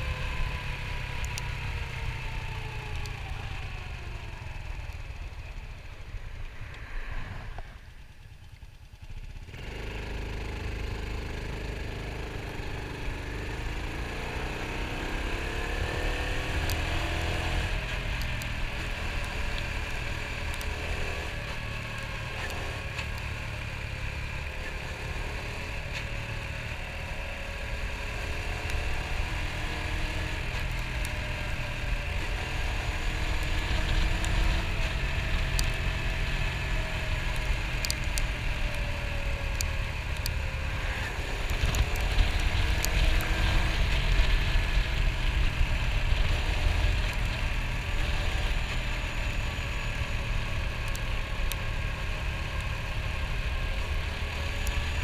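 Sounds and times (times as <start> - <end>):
motorcycle engine accelerating: 0.0 - 55.0
wind rushing over microphone: 40.3 - 48.6.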